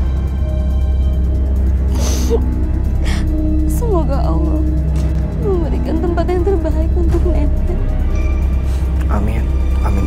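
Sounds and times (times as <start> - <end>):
low dramatic music score: 0.0 - 10.0
woman sobbing: 1.8 - 3.6.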